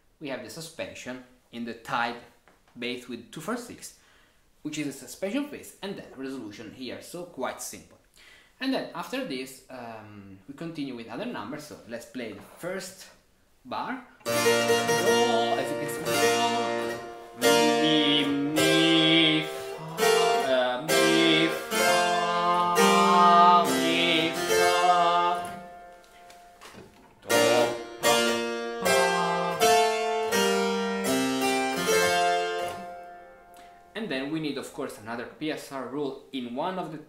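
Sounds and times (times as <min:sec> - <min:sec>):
harpsichord playing chords: 0:14.2 - 0:26.5, 0:27.3 - 0:33.6.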